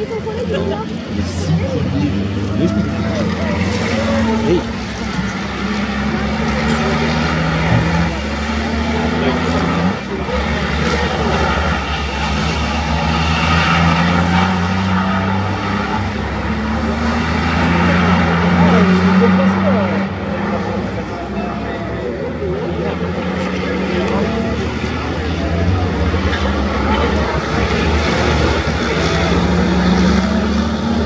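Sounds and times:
diesel truck engines revving: 0.0 - 31.0.

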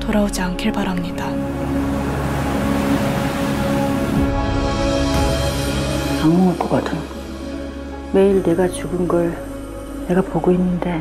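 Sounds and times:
low musical drone: 0.0 - 11.0.

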